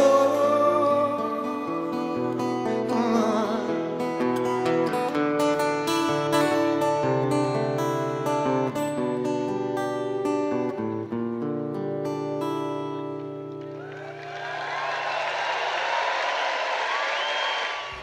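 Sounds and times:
acoustic guitar strummed chords: 0.0 - 13.6.

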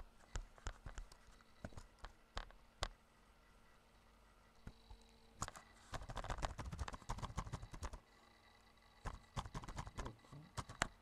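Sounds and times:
keyboard typing: 5.5 - 8.0, 9.0 - 11.0.

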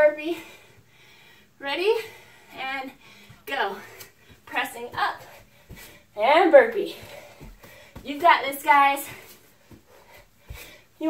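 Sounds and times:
person breathing: 0.3 - 4.5, 6.9 - 8.0, 9.0 - 11.0.

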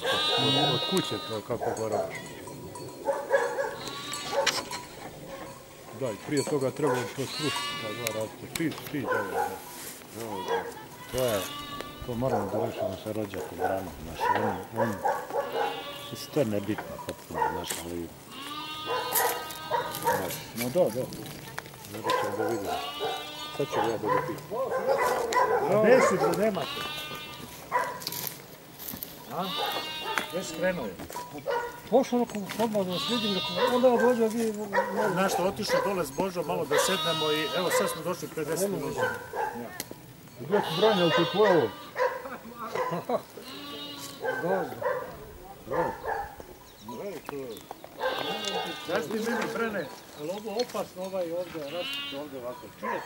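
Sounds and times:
farm animal bleating: 0.0 - 16.9, 17.5 - 46.3, 46.9 - 53.0.

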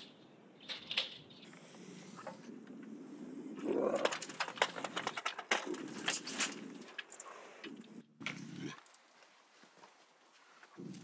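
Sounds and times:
lynx growling: 1.7 - 9.0
cage rattling and clicking: 3.6 - 8.0.

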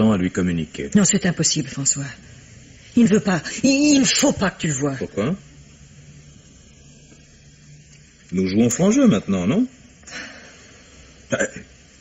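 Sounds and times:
old radio recording hiss: 0.0 - 12.0
soft breath: 10.0 - 11.1.

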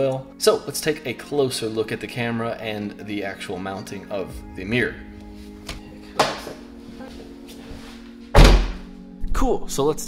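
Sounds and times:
background music: 0.0 - 10.0
car door shutting with thud: 8.4 - 8.8.

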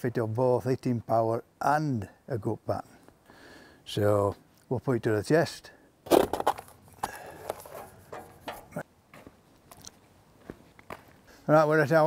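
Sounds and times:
cardboard crinkling and scraping: 7.4 - 8.8.

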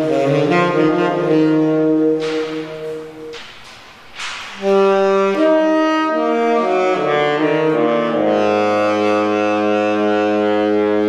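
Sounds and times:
tenor saxophone playing: 0.0 - 3.4, 4.6 - 11.0.

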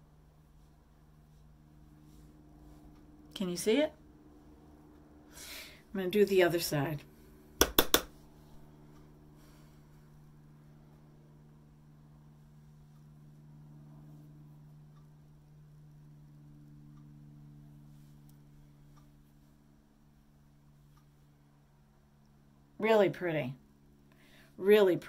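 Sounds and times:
faint low hum: 0.0 - 25.0
sharp clicks: 7.6 - 8.1.

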